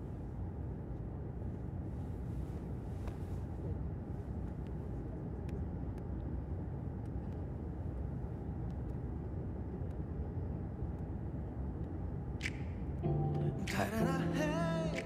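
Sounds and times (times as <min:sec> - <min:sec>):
jet airliner cabin drone: 0:00.0 - 0:15.0.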